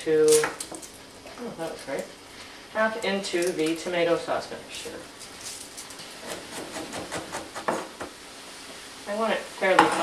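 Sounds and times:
meat sizzling in a frying pan: 0:07.4 - 0:10.0.

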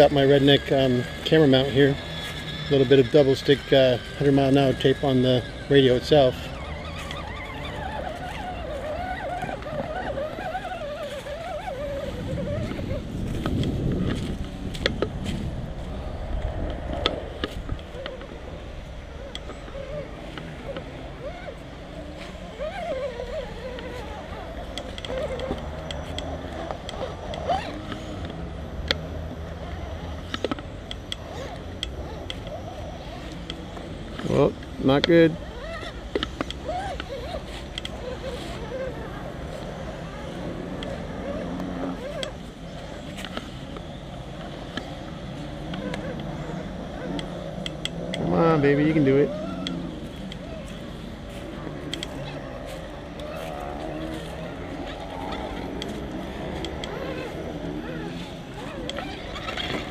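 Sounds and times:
rc car motor and gears whine: 0:00.0 - 0:59.9
transmitter clicks and handling noise: 0:16.3 - 0:20.9.

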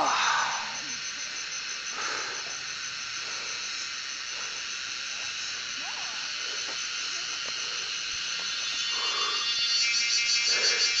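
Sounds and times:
fainter lower insect calls: 0:00.0 - 0:11.0
high-pitched insect chorus: 0:00.0 - 0:11.0
pulsing insect call: 0:00.0 - 0:11.0.

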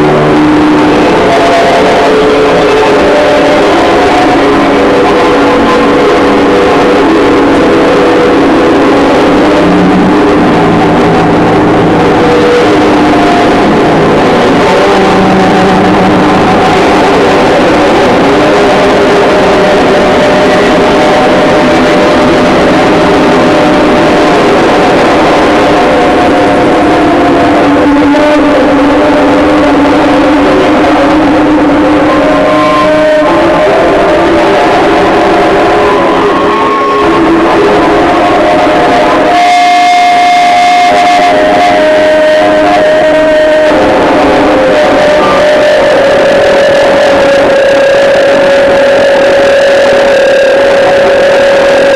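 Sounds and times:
distorted noise music drones: 0:00.0 - 0:51.9.

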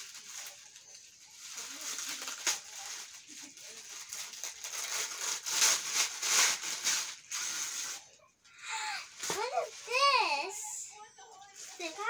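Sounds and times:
plastic bag crinkling: 0:00.0 - 0:08.2
child's excited voice: 0:09.3 - 0:10.9.

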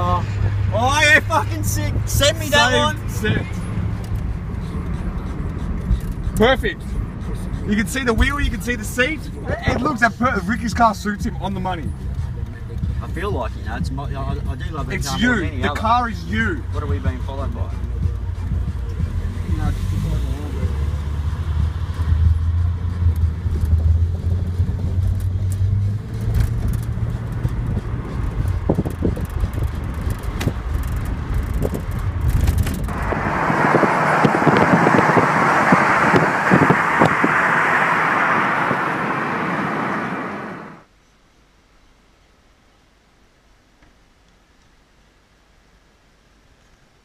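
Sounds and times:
car engine and road rumble: 0:00.0 - 0:47.0
loud even rush of noise: 0:31.4 - 0:40.9.

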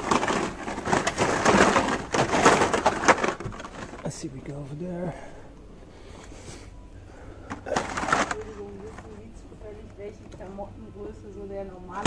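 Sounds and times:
plastic packaging rustling: 0:00.0 - 0:05.4, 0:07.3 - 0:09.4.

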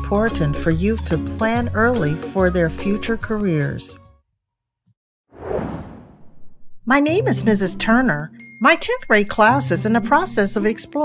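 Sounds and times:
whoosh sound effect: 0:05.4 - 0:06.9.

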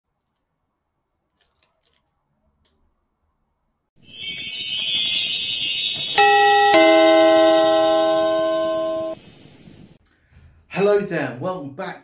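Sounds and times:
electronic two-note chime: 0:04.0 - 0:09.9
sparkly jingling shimmer: 0:04.0 - 0:10.0.

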